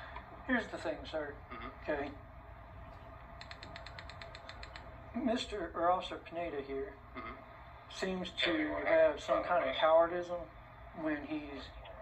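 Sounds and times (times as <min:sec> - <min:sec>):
faint low hum: 0:00.0 - 0:12.0
rapid mechanical clicks: 0:03.4 - 0:04.9.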